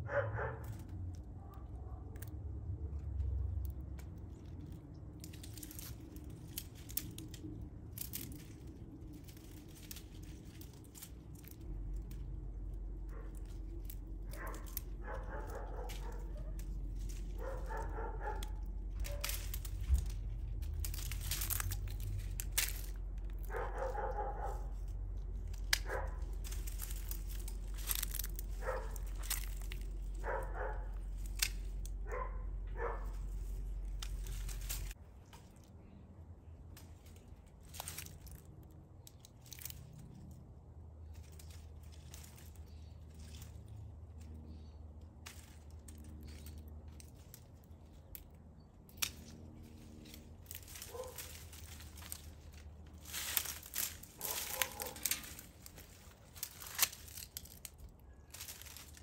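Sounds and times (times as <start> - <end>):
dog barking: 0.0 - 0.8, 1.4 - 2.2, 14.3 - 16.7, 17.4 - 19.5, 23.4 - 24.8, 25.8 - 26.3, 28.6 - 29.2, 30.2 - 31.0, 32.0 - 33.3, 50.9 - 51.3, 54.2 - 55.1
low steady hum: 0.0 - 59.0
dry vines crackling and snapping: 0.1 - 59.0.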